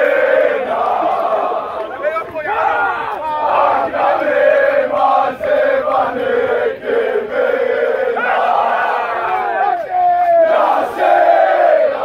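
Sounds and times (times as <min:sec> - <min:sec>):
young men chanting: 0:00.0 - 0:12.0.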